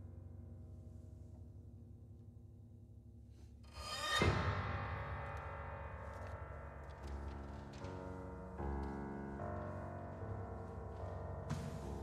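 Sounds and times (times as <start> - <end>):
low drone of pianos and percussion: 0.0 - 12.0.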